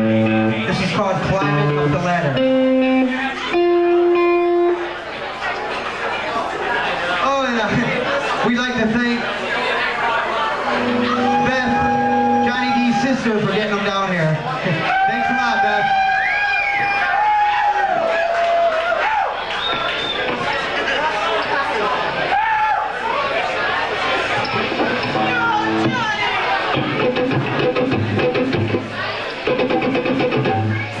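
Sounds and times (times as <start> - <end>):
audience chatter in a hall: 0.0 - 31.0
electric guitar note: 1.4 - 4.9, 10.6 - 13.1, 25.0 - 26.1
long held tone: 10.7 - 12.9.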